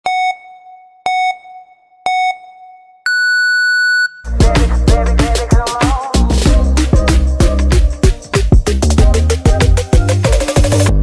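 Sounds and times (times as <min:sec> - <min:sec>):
electronic countdown beeps: 0:00.0 - 0:04.2.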